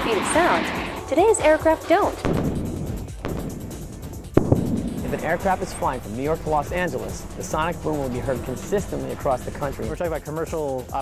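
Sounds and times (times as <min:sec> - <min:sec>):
background music: 0:00.0 - 0:11.0
sonic boom double bang: 0:02.2 - 0:10.0.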